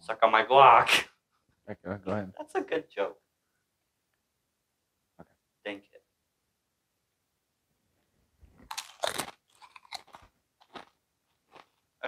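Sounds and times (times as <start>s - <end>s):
crunching tortilla chips: 8.6s - 11.8s
chewing crunches: 8.6s - 11.9s.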